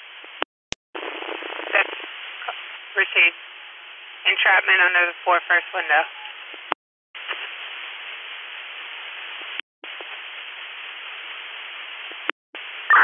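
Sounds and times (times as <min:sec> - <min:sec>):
two-way radio static hiss: 0:01.0 - 0:03.4, 0:04.2 - 0:13.0.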